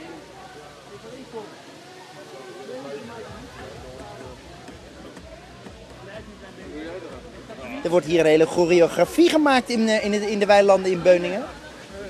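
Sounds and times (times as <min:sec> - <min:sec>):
background chatter: 0:00.0 - 0:12.0
background music: 0:02.4 - 0:12.0.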